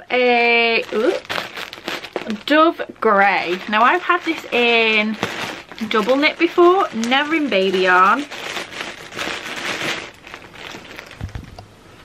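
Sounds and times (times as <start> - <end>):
yarn packaging rustling: 0.1 - 11.6.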